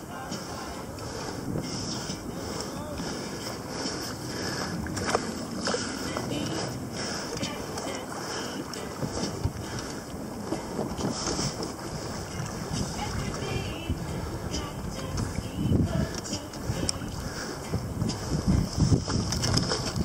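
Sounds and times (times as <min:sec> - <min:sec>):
water slapping against hull: 0:00.0 - 0:20.0
wind buffeting microphone: 0:00.0 - 0:20.0.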